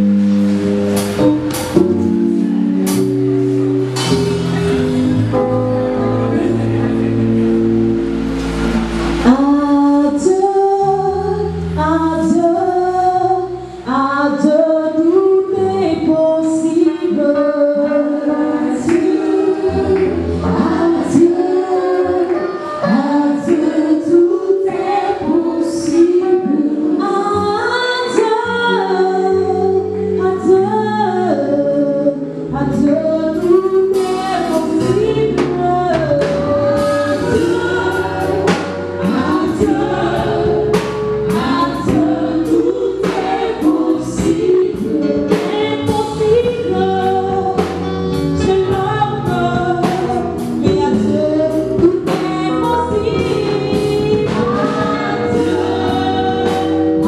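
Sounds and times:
amplified accompaniment: 0.0 - 28.0, 28.9 - 57.0
percussion hits: 0.3 - 5.2
women singing gospel: 9.1 - 57.0.

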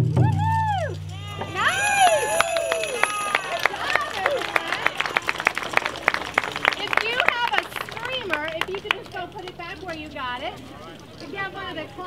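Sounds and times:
excited crowd voices: 0.7 - 8.8
children calling: 1.1 - 9.5.

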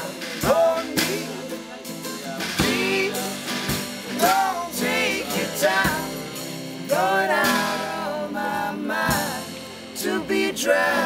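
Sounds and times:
acoustic string band playing: 0.0 - 11.0
small drum kit: 0.0 - 11.0
voices singing: 0.0 - 11.0.

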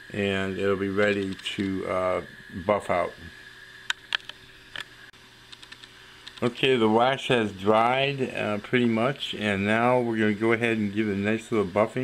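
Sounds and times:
steady low hum: 0.0 - 12.0
person speaking: 0.1 - 3.4, 6.4 - 12.0.

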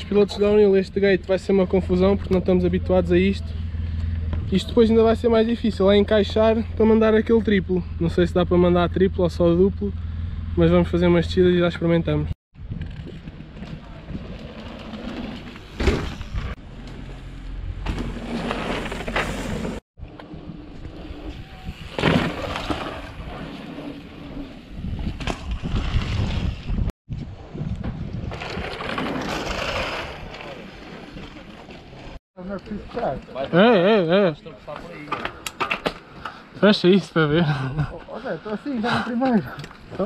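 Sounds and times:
wind on microphone: 20.4 - 28.7.

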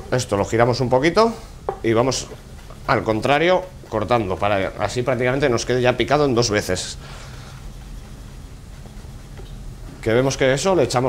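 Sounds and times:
steady hiss: 0.0 - 11.0
knife tapping cutting board: 1.7 - 2.3.

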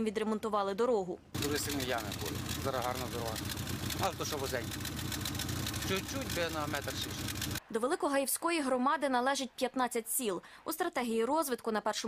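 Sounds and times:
man talking: 1.4 - 3.4, 4.0 - 4.7, 5.8 - 7.3
car engine idling: 1.4 - 7.6.

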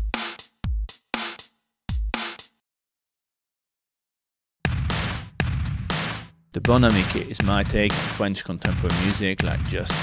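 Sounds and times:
drum kit loop: 0.0 - 2.5, 4.7 - 10.0.

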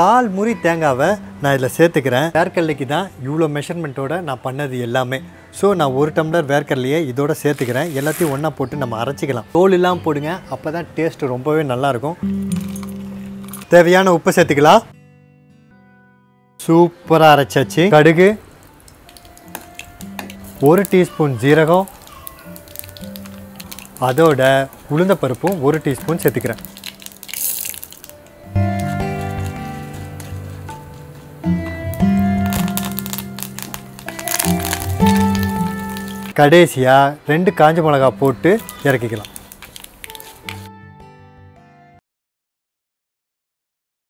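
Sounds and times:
background music chords: 0.0 - 4.0, 7.8 - 42.0
person speaking: 20.5 - 26.8, 34.2 - 39.5
held music chord: 28.4 - 32.6.

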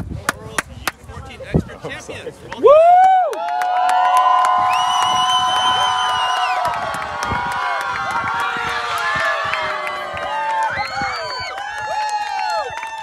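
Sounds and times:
crowd of girls screaming and cheering: 2.7 - 13.0.

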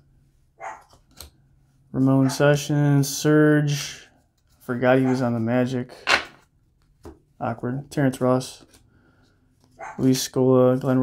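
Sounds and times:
dog barking: 0.6 - 0.9, 5.0 - 5.2, 9.8 - 10.1.

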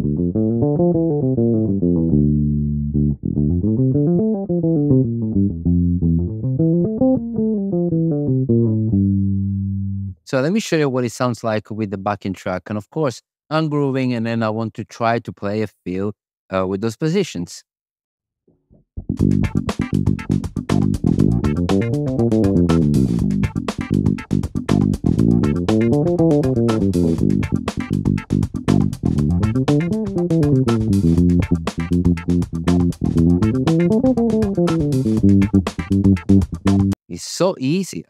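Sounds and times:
electric bass guitar runs: 0.0 - 10.1, 18.8 - 37.0
drum backing track: 19.2 - 37.0.

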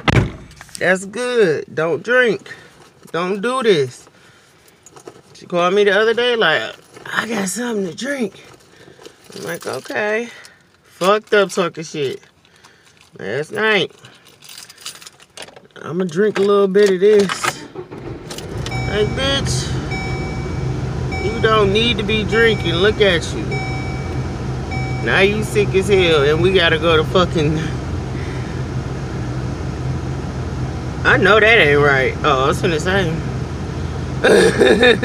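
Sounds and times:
car engine hum: 17.2 - 35.0.

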